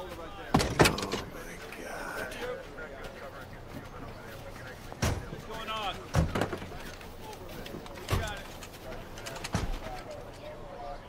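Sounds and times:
car doors slamming shut: 0.6s - 1.3s.

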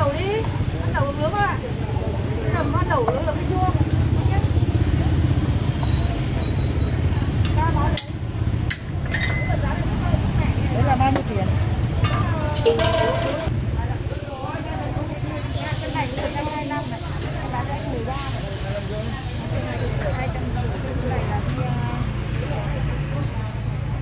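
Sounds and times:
motorbike engines running: 0.0s - 24.0s
people talking over one another: 0.0s - 24.0s.

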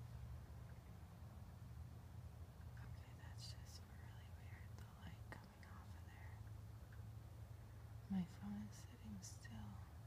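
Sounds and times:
steady low hum: 0.0s - 10.0s
person whispering: 2.8s - 6.4s, 8.1s - 10.0s.

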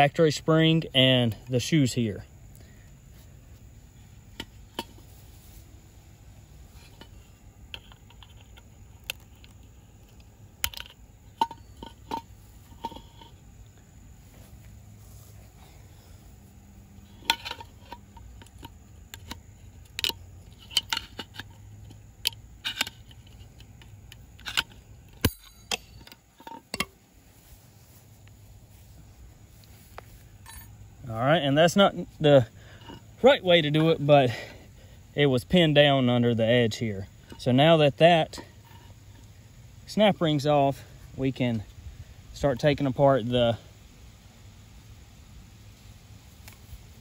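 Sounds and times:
metal tool clicking and scraping: 4.3s - 5.2s, 6.8s - 13.4s, 17.1s - 27.0s, 30.4s - 30.8s.

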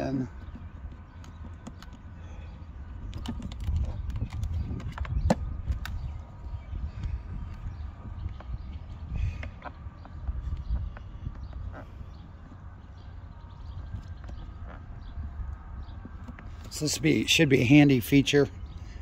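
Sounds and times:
wind on microphone: 2.2s - 17.0s.

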